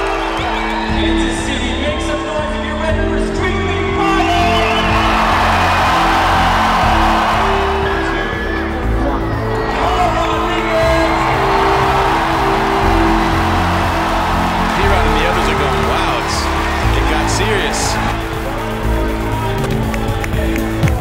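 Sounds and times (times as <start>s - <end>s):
arena crowd cheering: 0.0s - 21.0s
loud music with heavy bass: 4.4s - 21.0s.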